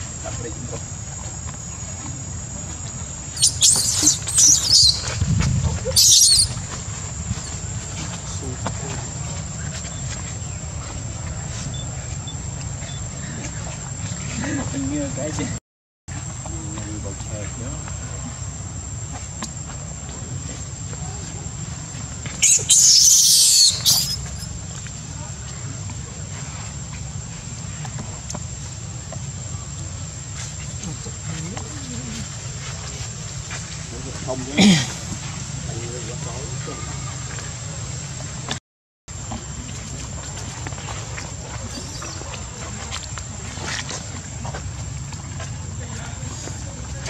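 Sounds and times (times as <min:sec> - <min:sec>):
animals rustling in leaf litter: 0:01.6 - 0:15.3, 0:20.4 - 0:37.9
baby monkey screaming: 0:03.3 - 0:06.6, 0:22.4 - 0:24.5
wind rumble on microphone: 0:04.4 - 0:12.6.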